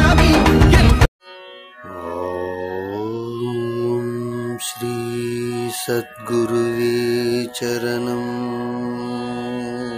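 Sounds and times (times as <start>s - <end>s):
musical accompaniment: 0.0s - 9.9s
devotional chant singing: 1.8s - 9.9s.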